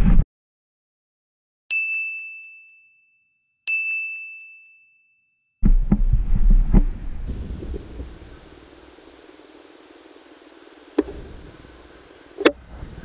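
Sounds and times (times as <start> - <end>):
bell-like ding chime: 1.7 - 5.6
wind on microphone: 5.6 - 8.6.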